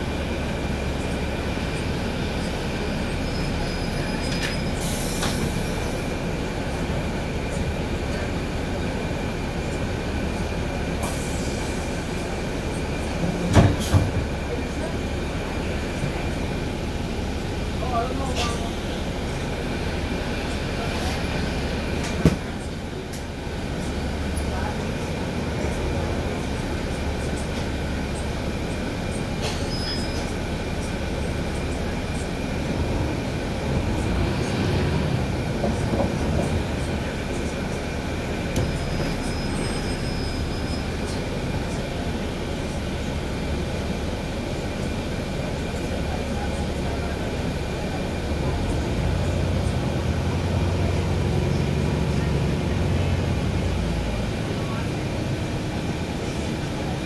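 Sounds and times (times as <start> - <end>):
bus engine drone: 0.0 - 57.0.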